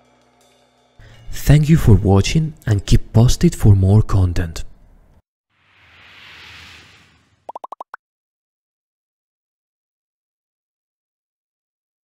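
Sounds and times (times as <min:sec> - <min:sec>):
whoosh: 0:05.6 - 0:07.5
quick rising blips: 0:05.8 - 0:08.0.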